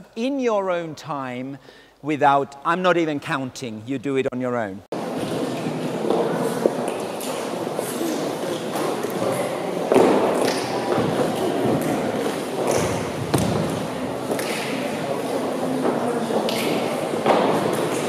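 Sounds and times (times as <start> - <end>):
murmur of voices: 5.0 - 18.0.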